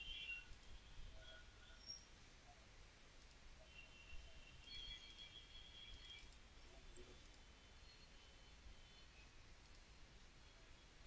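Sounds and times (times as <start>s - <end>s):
computer mouse clicks: 0.5s - 0.7s, 3.2s - 3.4s, 7.2s - 7.4s, 9.6s - 9.9s.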